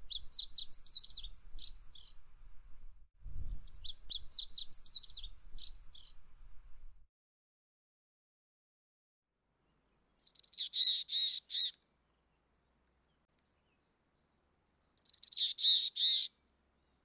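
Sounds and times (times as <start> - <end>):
bird calling: 10.2 - 11.8, 15.0 - 16.4.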